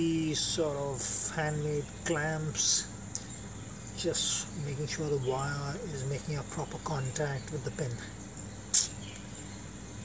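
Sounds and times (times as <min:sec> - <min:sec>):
insects trilling: 0:00.0 - 0:10.0
sharp hiss: 0:08.7 - 0:09.0.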